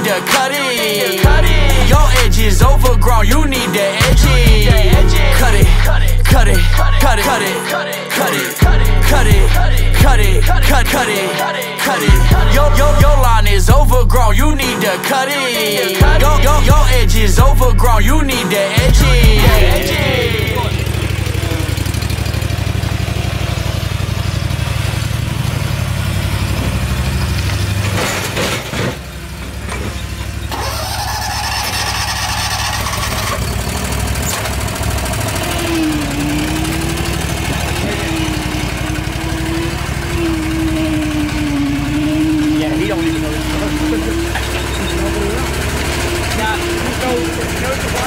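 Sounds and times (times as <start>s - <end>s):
hip-hop beat: 0.0s - 21.9s, 35.4s - 48.0s
lawn mower engine running: 0.0s - 48.0s.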